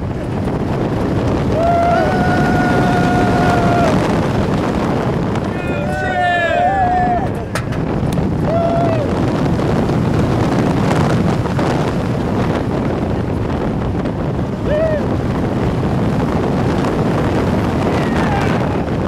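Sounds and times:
roller coaster train rumbling on track: 0.0 - 19.0
wind rushing over microphone: 0.0 - 19.0
rider crying out: 1.5 - 4.0, 5.4 - 7.6.

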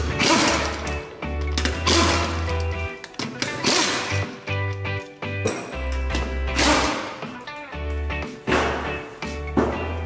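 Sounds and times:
pneumatic impact wrench bursts: 0.0 - 1.0, 1.7 - 2.5, 3.5 - 4.4, 6.5 - 7.2
background music with bass line: 0.0 - 10.0.

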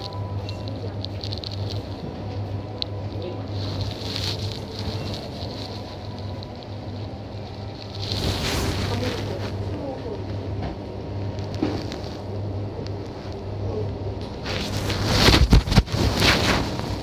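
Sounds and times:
rustling: 0.0 - 10.0, 14.4 - 17.0
faint indistinct voices or music: 0.0 - 17.0
low hum: 0.0 - 17.0.

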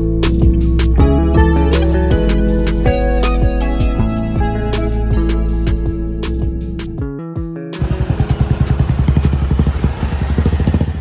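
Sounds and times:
guitar music: 0.0 - 9.4
vehicle engine running loudly: 7.8 - 11.0.

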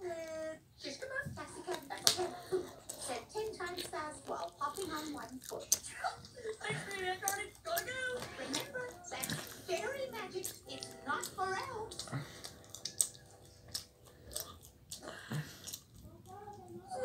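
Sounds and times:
held musical tone: 9.7 - 14.3.

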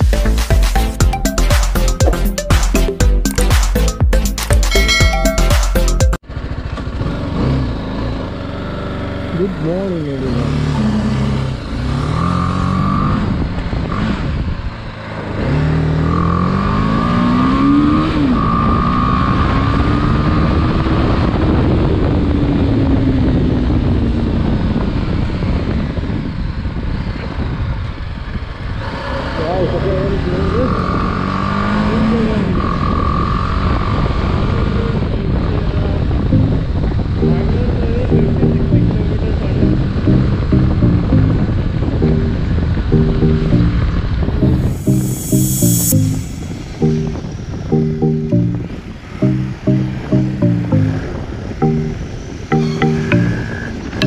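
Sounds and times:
motorcycle engine accelerating: 6.2 - 25.0, 28.6 - 54.0
wind rushing on microphone: 13.1 - 15.0, 18.7 - 28.9.

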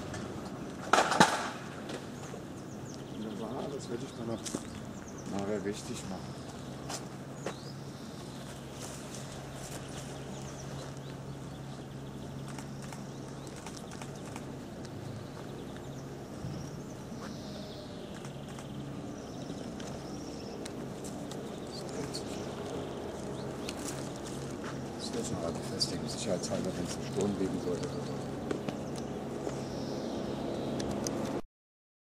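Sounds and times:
birds chirping: 0.0 - 31.4
steady low hum: 0.0 - 31.4.

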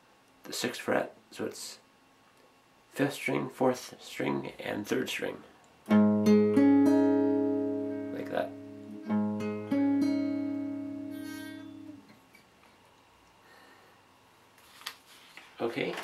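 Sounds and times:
acoustic guitar chords picked: 5.8 - 12.2.

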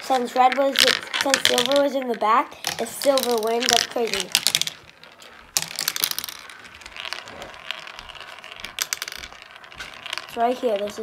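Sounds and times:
marbles rolling in plastic run: 0.0 - 11.0.

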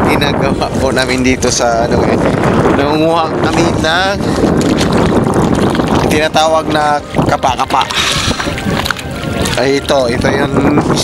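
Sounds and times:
wind rushing on microphone: 0.0 - 11.0
water moving around wading person: 3.4 - 11.0.

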